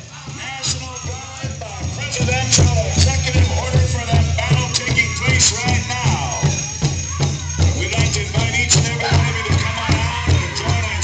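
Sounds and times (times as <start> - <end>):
drum beats: 0.0 - 11.0
group singing in high gliding lines: 0.0 - 11.0.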